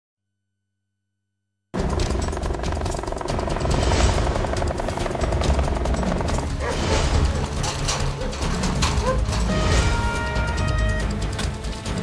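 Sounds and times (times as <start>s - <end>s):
helicopter rotor chop: 1.8s - 9.0s
news intro theme music: 1.8s - 12.0s.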